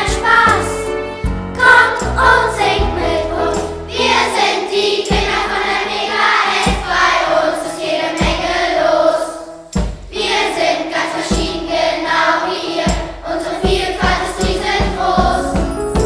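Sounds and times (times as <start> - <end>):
instrumental backing: 0.0 - 7.1, 13.0 - 16.0
choir singing: 0.0 - 15.6.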